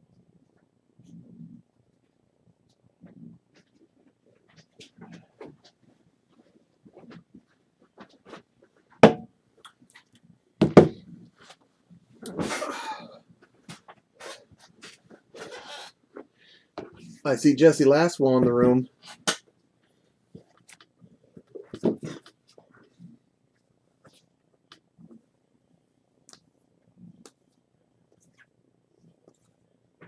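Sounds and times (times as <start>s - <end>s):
sharp knocks: 9.0s - 9.3s.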